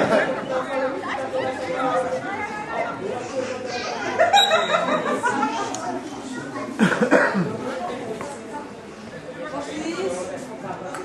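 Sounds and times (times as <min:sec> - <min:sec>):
background chatter: 0:00.0 - 0:11.0
person coughing: 0:06.8 - 0:07.6.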